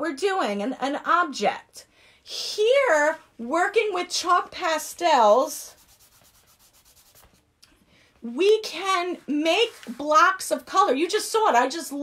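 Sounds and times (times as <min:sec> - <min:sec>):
hand rubbing on paper: 0:05.7 - 0:07.5.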